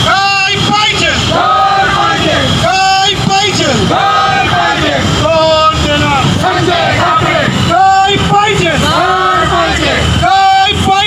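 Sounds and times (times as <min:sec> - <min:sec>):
crowd chanting: 0:00.9 - 0:11.0.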